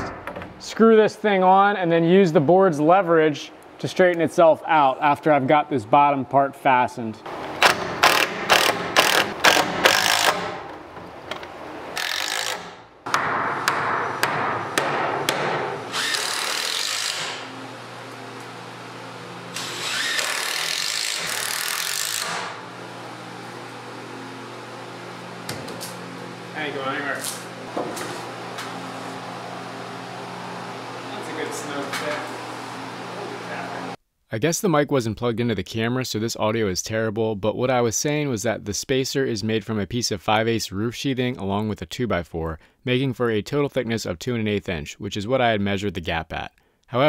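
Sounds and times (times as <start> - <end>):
power drill driving screws: 7.6 - 10.6, 12.0 - 12.8, 15.9 - 17.5, 19.5 - 22.6
steady low hum: 13.6 - 34.0.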